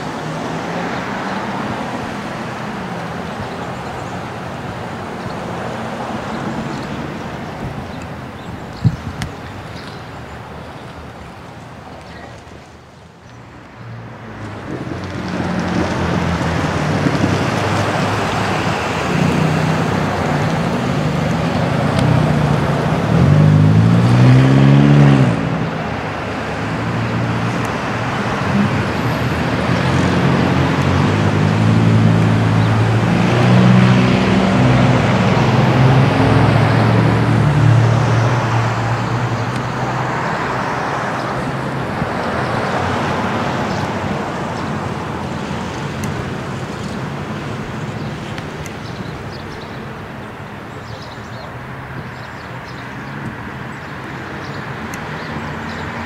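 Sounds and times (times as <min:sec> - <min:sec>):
roadway hum: 0:00.0 - 0:56.0
vehicle engines: 0:00.0 - 0:56.0.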